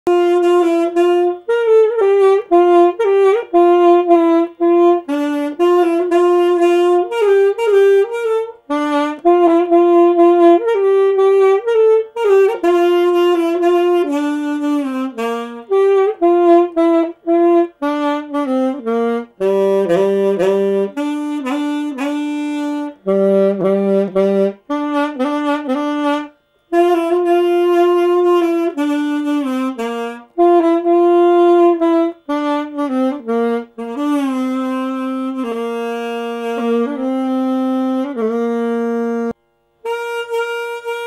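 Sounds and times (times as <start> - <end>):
solo alto saxophone melody: 0.0 - 41.0.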